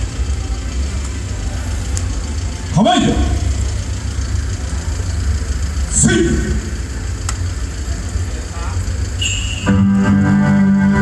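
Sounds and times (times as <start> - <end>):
street ambience rumble: 0.0 - 11.0.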